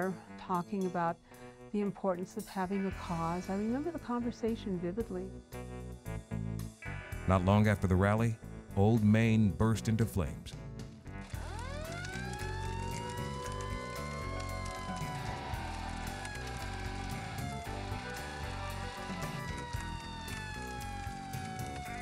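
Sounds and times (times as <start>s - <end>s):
music: 0.0s - 22.0s
fire engine siren wailing: 11.3s - 22.0s.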